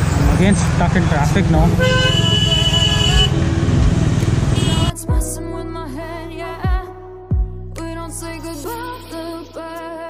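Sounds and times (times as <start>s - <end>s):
motorcycle engine: 0.0s - 5.0s
traffic noise: 0.0s - 5.0s.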